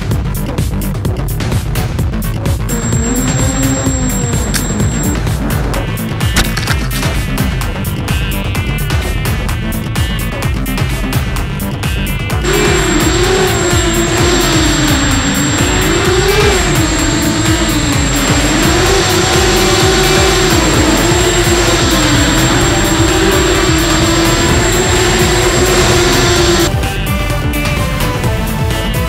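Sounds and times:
background music: 0.0 - 29.0
drone motors whining: 2.6 - 6.9, 12.0 - 26.7.

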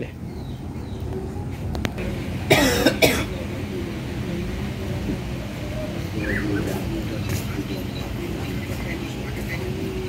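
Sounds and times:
person coughing: 2.5 - 3.4.

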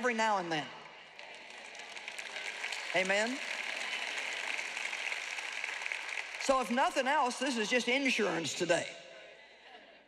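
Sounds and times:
large audience applauding: 1.0 - 7.6.

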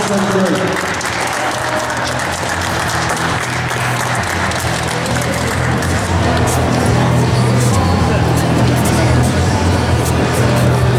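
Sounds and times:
audience applauding: 0.0 - 7.1.

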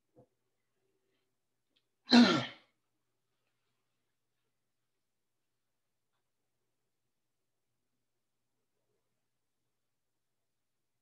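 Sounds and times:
man clearing throat: 2.1 - 2.7.

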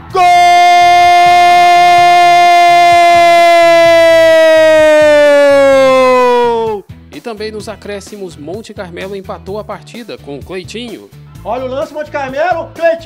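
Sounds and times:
commentator's long goal cry: 0.2 - 6.8.

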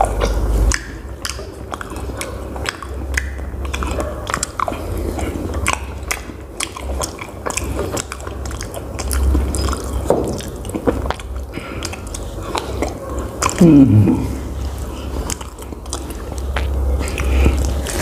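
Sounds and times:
person chewing food: 0.0 - 18.0.

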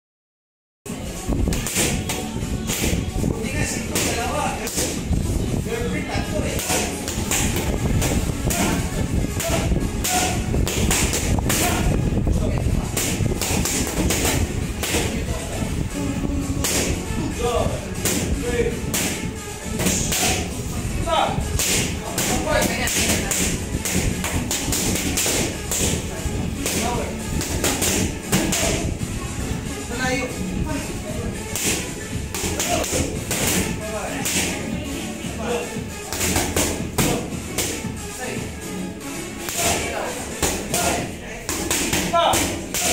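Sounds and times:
voices: 0.9 - 10.6, 14.3 - 42.9
background music: 0.9 - 42.9.

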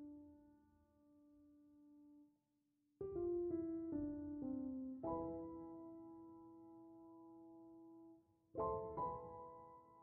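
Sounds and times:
piano music: 3.0 - 10.0.

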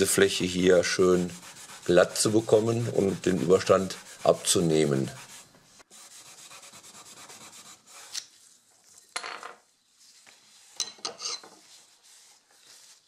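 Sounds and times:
abrasive fleece rubbing wood: 0.4 - 8.2, 11.6 - 13.0.

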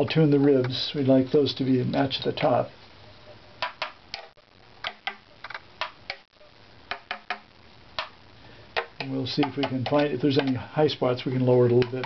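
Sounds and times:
violin ribs tapped by hand: 8.8 - 10.6.

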